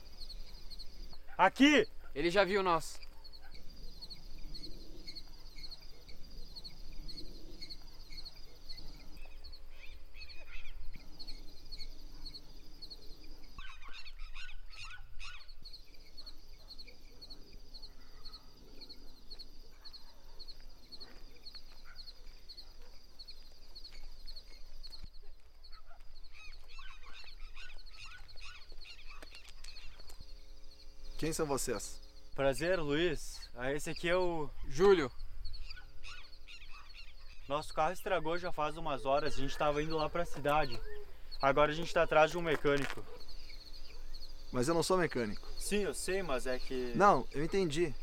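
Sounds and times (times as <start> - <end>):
insects chirring: 0.0 - 48.0.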